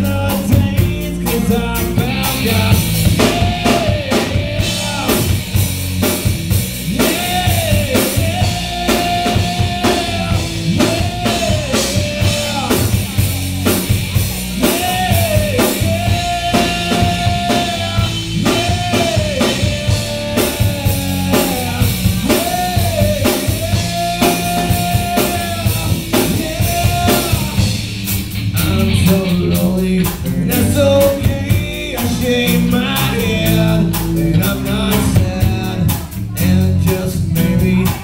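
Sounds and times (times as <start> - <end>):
live rock band playing: 0.0 - 38.0.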